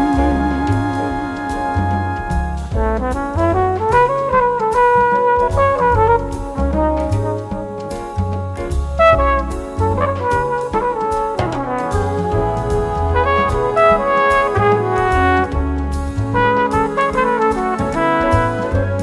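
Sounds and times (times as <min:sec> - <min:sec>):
bass: 0:00.0 - 0:19.0
big band brass chords: 0:00.0 - 0:19.0
drums with cymbal strokes: 0:00.0 - 0:19.0.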